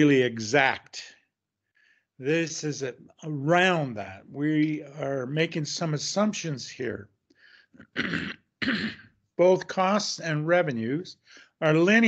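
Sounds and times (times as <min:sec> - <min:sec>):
man clearing his throat: 0:07.8 - 0:09.2.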